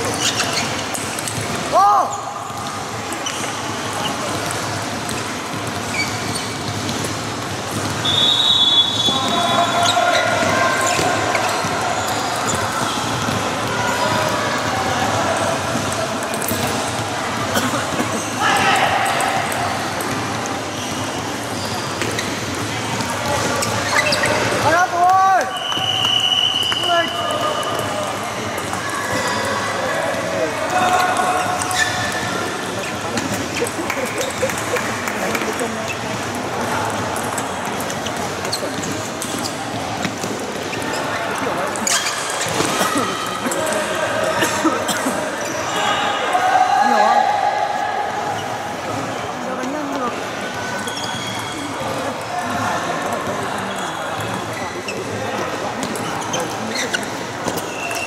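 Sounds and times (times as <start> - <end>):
voices chattering: 0.0 - 58.0
high squeaks: 0.1 - 1.3, 23.5 - 24.6, 50.8 - 51.8.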